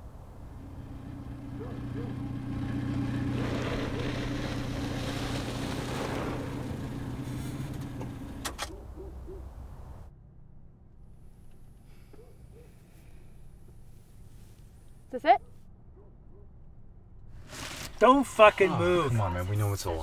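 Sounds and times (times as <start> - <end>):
passing car tyre noise: 0.0 - 10.1
vehicle engine humming: 0.0 - 20.0.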